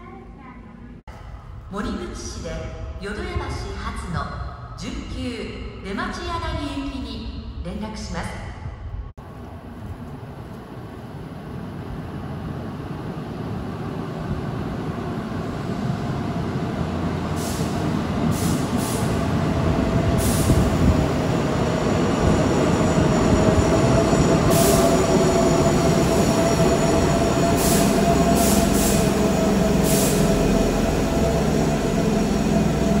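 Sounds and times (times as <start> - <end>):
steady train whine: 8.8 - 33.0
train pulling into station: 9.2 - 33.0.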